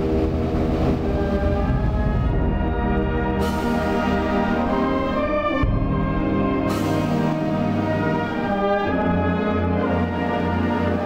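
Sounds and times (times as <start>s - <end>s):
wind band brass chords: 0.0s - 11.0s.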